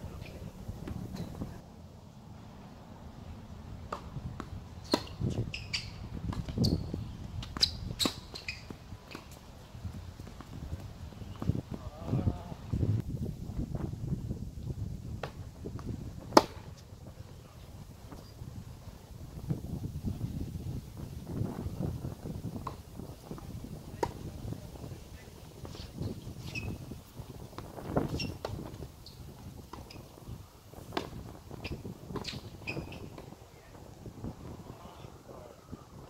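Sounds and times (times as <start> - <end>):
wind rumble on microphone: 0.0 - 1.6, 3.2 - 36.0
tennis ball struck by racket: 16.3 - 16.7.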